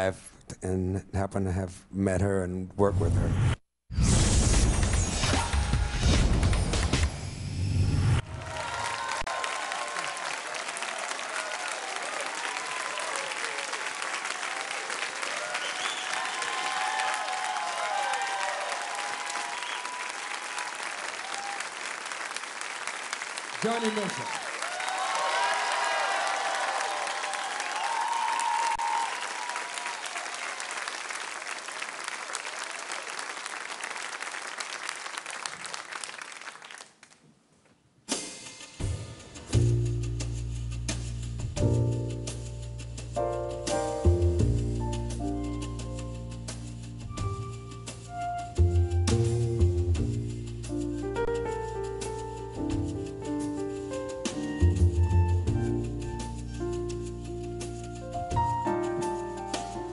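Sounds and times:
audience applauding: 8.2s - 37.2s
whoops and shouts: 8.4s - 10.1s, 15.4s - 20.2s, 24.2s - 29.2s.

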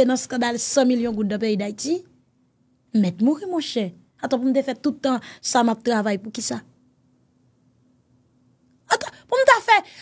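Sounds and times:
woman speaking: 0.0s - 2.1s, 2.9s - 6.8s, 8.8s - 10.0s
faint low hum: 0.0s - 10.0s.

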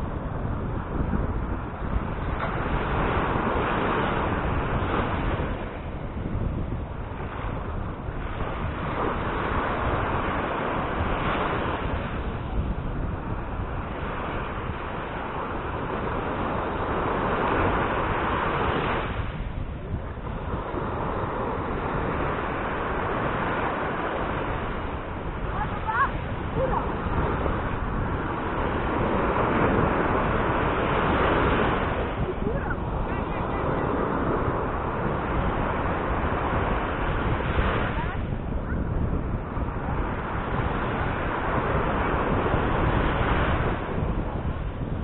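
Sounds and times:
surf washing onto beach: 0.0s - 45.0s
wind rumble on microphone: 0.0s - 45.0s.

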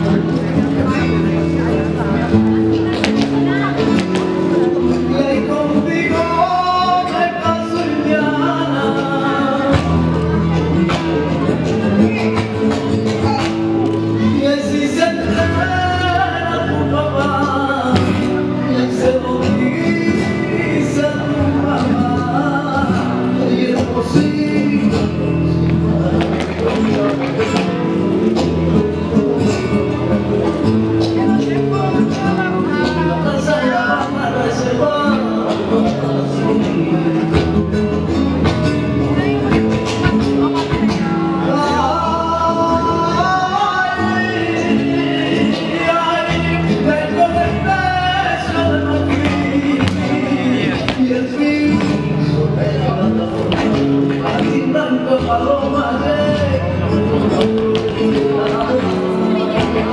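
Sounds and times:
person singing: 0.0s - 59.9s
spanish guitar strumming: 0.0s - 59.9s.

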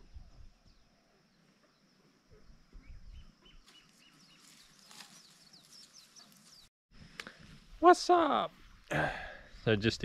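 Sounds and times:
bird chirps: 0.6s - 6.7s.

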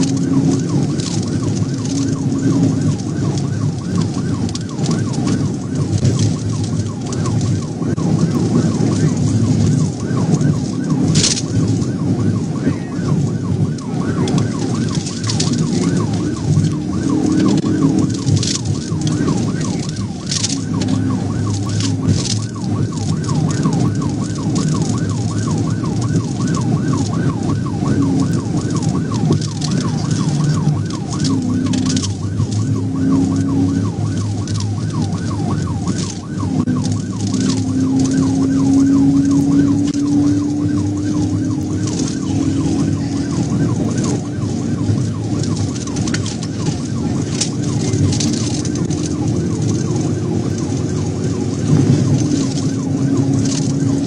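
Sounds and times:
car engine and road noise: 0.0s - 54.0s
police siren yelping: 0.0s - 54.0s.

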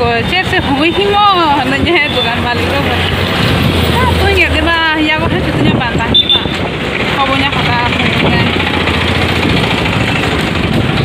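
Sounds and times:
faint voices of passers-by: 0.0s - 11.0s
vehicle engines running: 0.0s - 11.0s.

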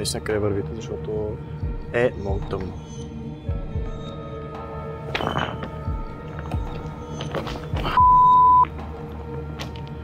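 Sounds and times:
background music with low beat: 0.0s - 10.0s
electronic beep: 7.9s - 8.7s.

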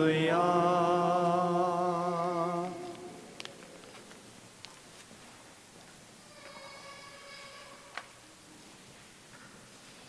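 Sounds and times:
chant note sung with vibrato: 0.0s - 3.3s, 6.3s - 7.9s.

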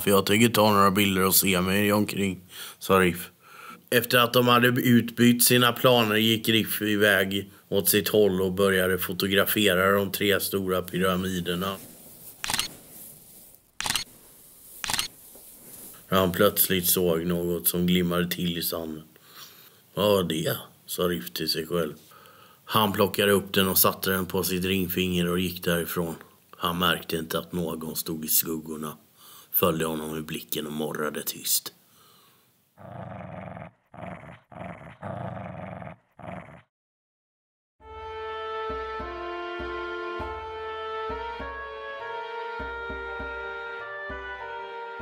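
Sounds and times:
camera shutter clicking: 12.4s - 12.7s, 13.8s - 14.1s, 14.8s - 15.1s
low dog-like growl: 32.8s - 36.7s.

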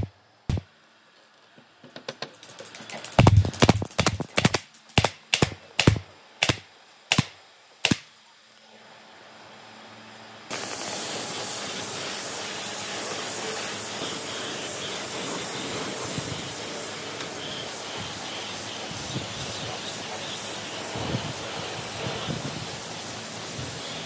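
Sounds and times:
nail gun firing: 3.1s - 8.1s
steady air hiss: 9.4s - 24.0s.

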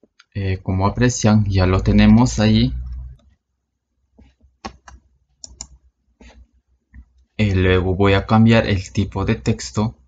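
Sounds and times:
mouse and keyboard clicking: 4.2s - 7.3s.

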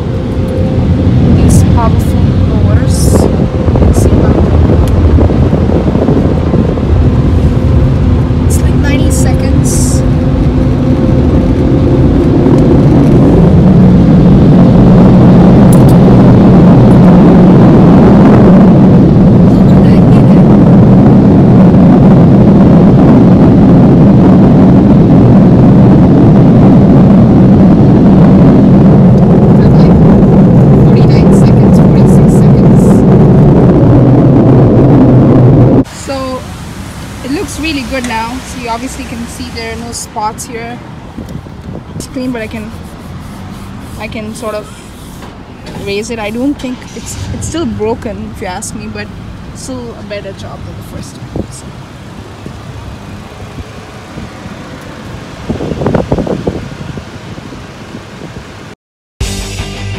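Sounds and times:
car wash equipment rushing: 35.8s - 58.7s.

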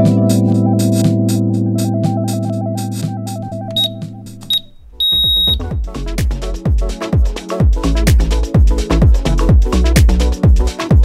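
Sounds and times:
background music: 0.0s - 11.0s
electronic track with heavy kick drum: 2.0s - 11.0s
interval timer beeps: 3.5s - 5.8s.

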